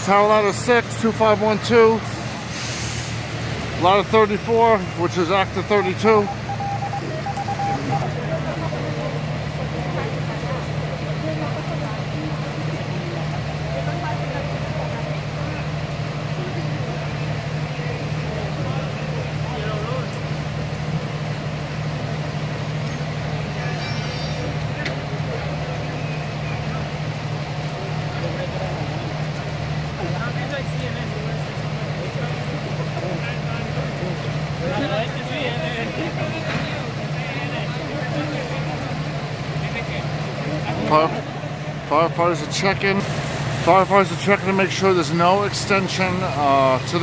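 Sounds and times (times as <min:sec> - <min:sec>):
vehicle engine droning: 0:00.0 - 0:47.0
faint voices: 0:03.7 - 0:47.0.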